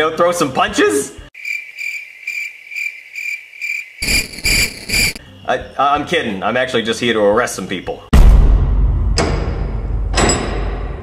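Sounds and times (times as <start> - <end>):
cricket chirping: 1.4 - 6.4.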